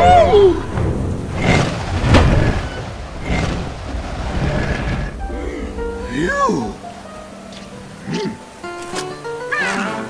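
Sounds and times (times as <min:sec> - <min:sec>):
low rumble: 0:00.0 - 0:08.1
sharp hit: 0:00.0 - 0:08.2
rushing swells: 0:00.0 - 0:09.5.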